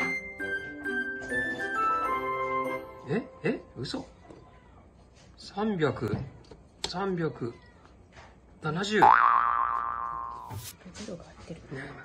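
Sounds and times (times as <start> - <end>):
cartoon boing sound effect: 9.0 - 10.5.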